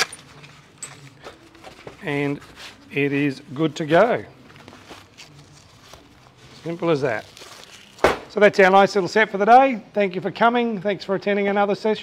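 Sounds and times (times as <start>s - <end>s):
rustling of pouch: 3.8s - 8.4s.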